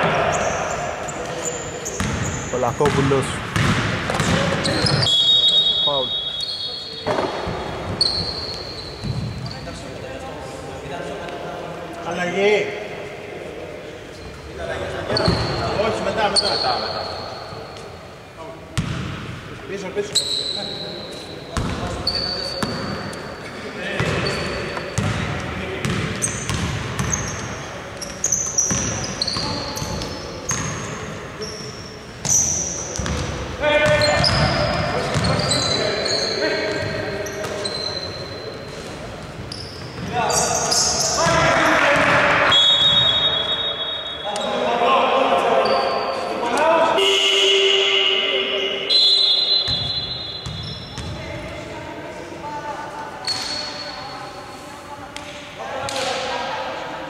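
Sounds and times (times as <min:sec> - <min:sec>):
sneakers squeaking: 0:00.0 - 0:10.8, 0:14.1 - 0:44.7, 0:45.4 - 0:51.8, 0:52.9 - 0:56.2
basketball bouncing on hardwood: 0:02.8 - 0:04.5.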